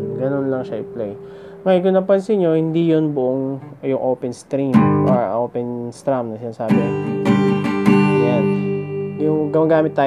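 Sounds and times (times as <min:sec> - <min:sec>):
acoustic guitar strumming: 0:00.0 - 0:03.8, 0:04.6 - 0:10.0.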